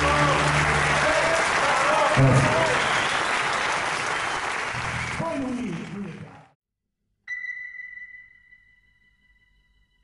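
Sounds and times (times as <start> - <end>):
audience applauding: 0.0 - 6.5
bright ringing tone: 7.3 - 10.0.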